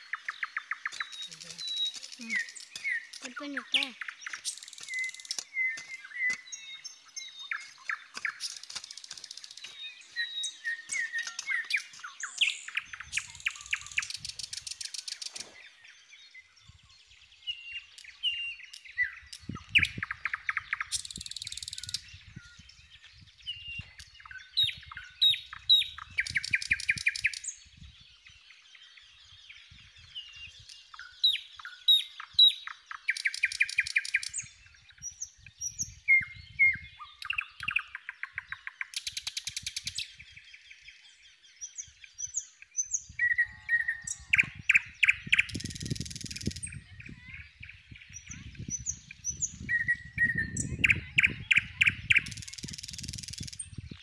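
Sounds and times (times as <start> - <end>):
small birds chirping: 0.0 - 54.0.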